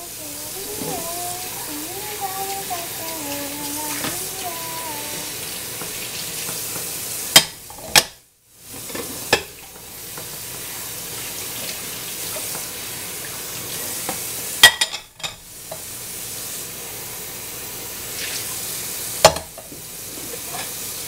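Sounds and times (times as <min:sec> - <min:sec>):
tap water running into sink: 0:00.0 - 0:08.0, 0:08.7 - 0:14.5
dishes and glassware clinking: 0:14.6 - 0:15.4.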